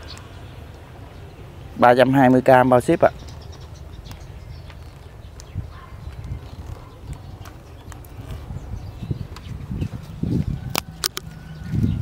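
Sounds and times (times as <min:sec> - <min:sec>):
woody stems clicking and knocking: 0:10.7 - 0:11.2.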